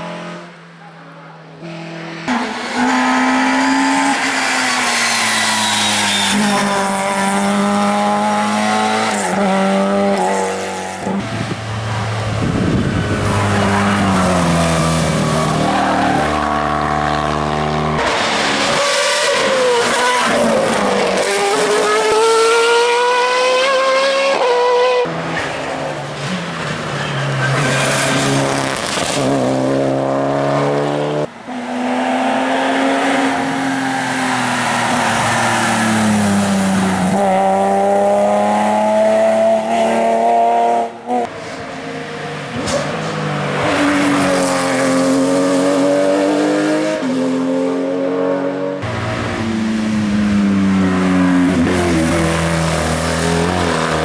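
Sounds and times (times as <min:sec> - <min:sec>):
race car engines revving: 0:00.0 - 0:54.0
tyre squeal: 0:04.0 - 0:06.8, 0:26.8 - 0:28.5.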